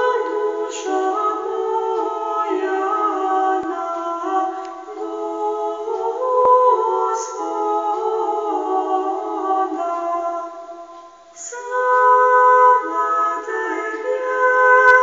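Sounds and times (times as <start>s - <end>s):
voices singing held chords: 0.0s - 15.0s.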